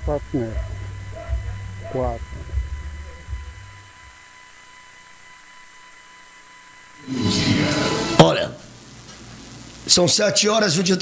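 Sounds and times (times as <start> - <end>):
low rumble: 0.0 - 4.2
high-pitched whines: 0.0 - 10.0
electrical hiss and hum: 0.0 - 11.0.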